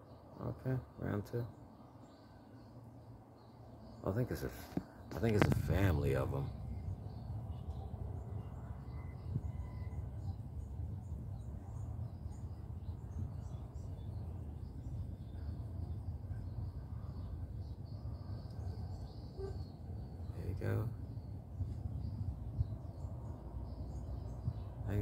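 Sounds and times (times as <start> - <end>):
small birds chirping: 0.0 - 25.0
steady low rumble: 0.5 - 25.0.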